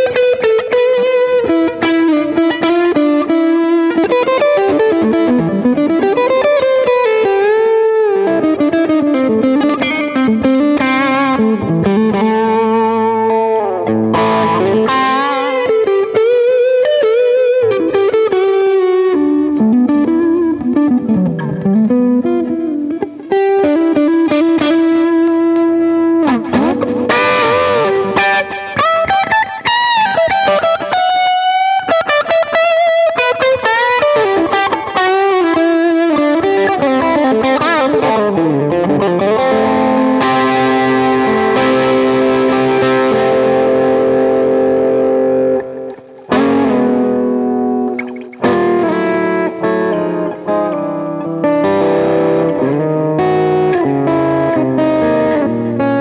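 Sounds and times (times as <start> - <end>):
overdriven electric guitar lead: 0.0 - 56.0.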